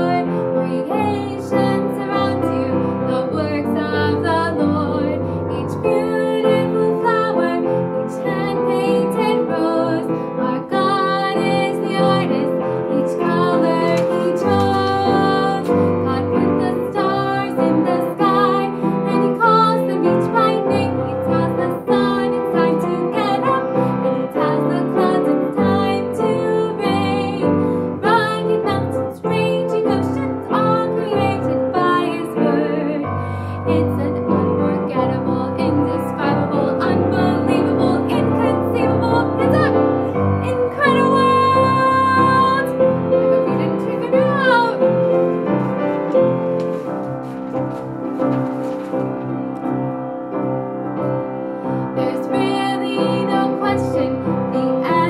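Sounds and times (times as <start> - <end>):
woman singing: 0.0 - 45.4, 51.9 - 55.0
piano accompaniment: 0.0 - 55.0.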